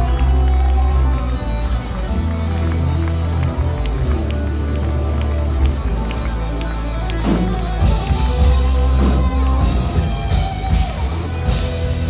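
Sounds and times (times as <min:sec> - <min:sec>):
drums: 0:00.0 - 0:12.0
electric guitars: 0:00.0 - 0:12.0
heavy bass line: 0:03.9 - 0:12.0.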